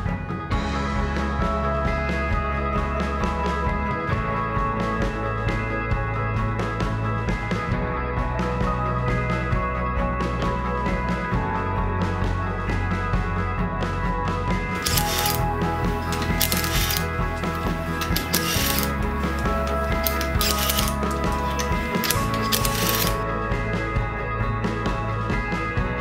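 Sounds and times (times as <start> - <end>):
rock music: 0.0 - 26.0
impact wrench bursts: 14.8 - 23.2.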